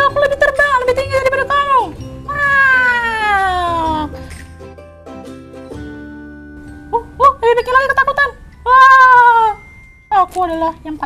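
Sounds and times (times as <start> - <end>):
soft background music: 0.0 - 11.0
woman wailing: 2.3 - 4.2, 8.7 - 9.6.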